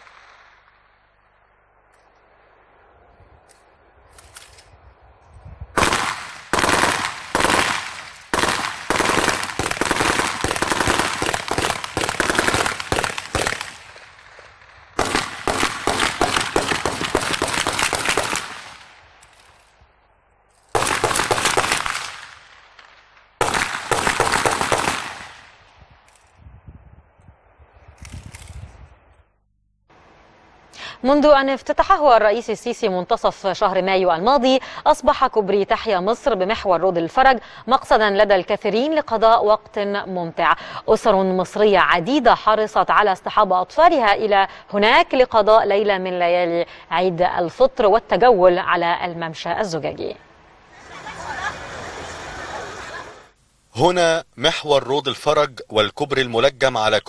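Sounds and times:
automatic rifle fire: 5.8 - 18.9, 20.7 - 22.6, 23.4 - 25.5.

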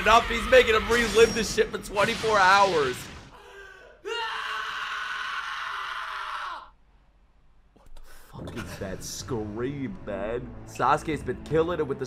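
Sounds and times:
young man screaming in pain: 3.4 - 6.7.

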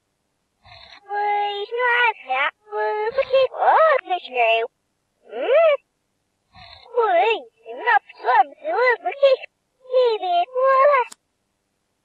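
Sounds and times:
high-pitched talking toy voice: 1.0 - 5.8, 6.7 - 11.2.

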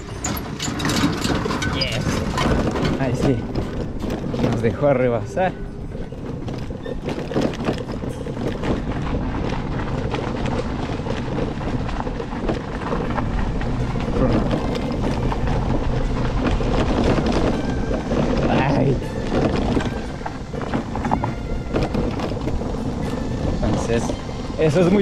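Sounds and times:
low rumble: 0.0 - 25.0
motorbike rattles and knocks: 0.0 - 25.0
wind rushing over microphone: 0.0 - 25.0.

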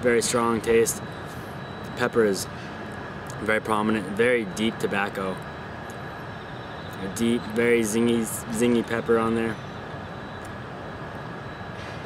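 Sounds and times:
outdoor background rumble: 0.0 - 12.0.

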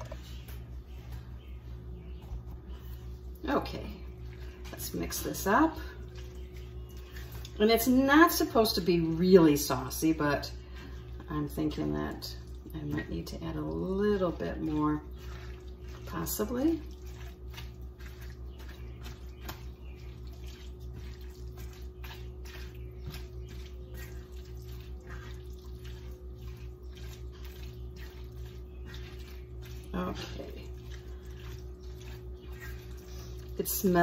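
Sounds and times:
pulsing low hum: 0.0 - 34.0
wet squelching: 2.6 - 34.0
spatula scraping a pan: 31.3 - 33.4.

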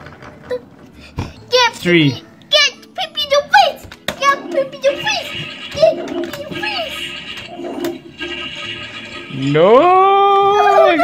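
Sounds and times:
toy electronic sound effect: 4.8 - 9.6.

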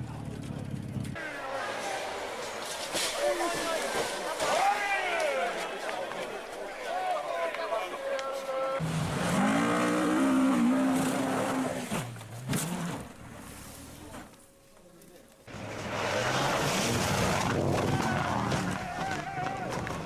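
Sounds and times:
spectators' voices: 0.7 - 8.8
rally car engines revving: 8.8 - 14.3, 15.5 - 20.0.

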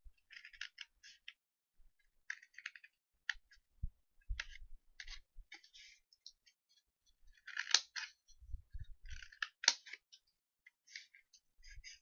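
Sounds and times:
scissors snipping paper: 7.4 - 8.2.

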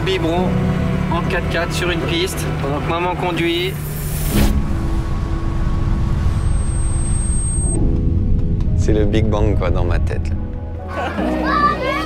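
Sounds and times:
truck engine and road rumble: 0.0 - 11.2.

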